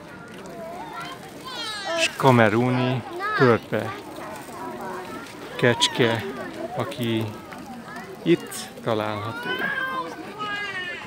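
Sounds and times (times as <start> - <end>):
children chattering: 0.0 - 11.0
child's voice: 0.5 - 2.1, 9.3 - 11.0.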